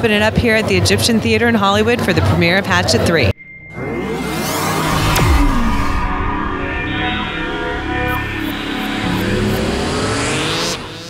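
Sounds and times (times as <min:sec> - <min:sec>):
electronic whoosh: 0:03.4 - 0:11.0
steady low electronic bed: 0:03.4 - 0:11.0
tones rising in pitch: 0:03.4 - 0:11.0.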